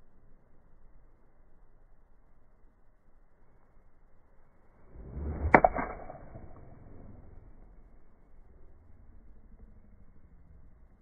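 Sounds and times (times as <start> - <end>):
golf club swish: 4.9 - 7.2
golf club striking ball: 5.1 - 6.8.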